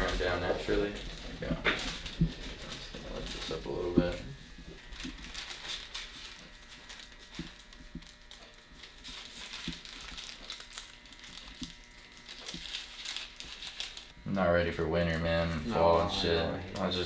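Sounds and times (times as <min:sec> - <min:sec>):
rustling and crinkling of thin sheet: 0:00.0 - 0:14.1.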